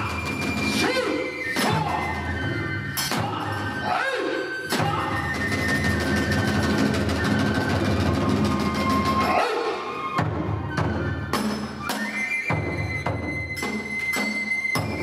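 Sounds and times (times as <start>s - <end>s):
drums: 0.0s - 4.0s, 4.6s - 15.0s
bamboo flute: 0.0s - 15.0s.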